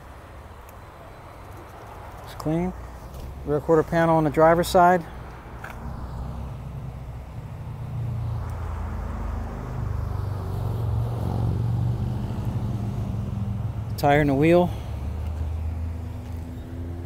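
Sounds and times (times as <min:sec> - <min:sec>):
vehicle engine rumbling: 0:00.0 - 0:17.0.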